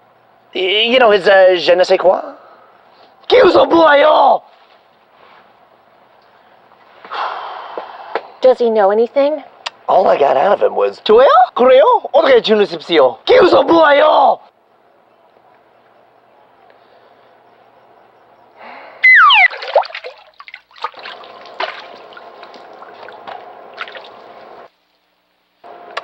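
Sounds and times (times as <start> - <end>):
person exhaling hard: 7.1 - 8.2, 18.6 - 19.2
descending whistle tone: 19.0 - 19.6
water splashing: 19.1 - 24.4.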